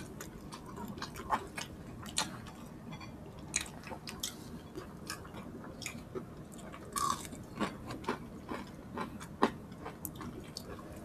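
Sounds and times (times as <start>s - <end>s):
crunchy chewing: 3.4s - 11.0s.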